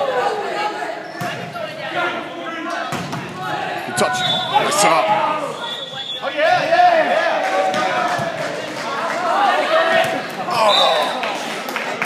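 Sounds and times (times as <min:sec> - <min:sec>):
people shouting in gymnasium: 0:00.0 - 0:11.7.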